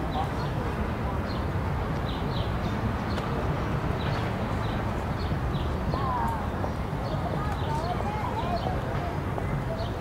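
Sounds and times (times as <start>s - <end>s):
distant voices: 0.0s - 10.0s
traffic rumble: 0.0s - 10.0s.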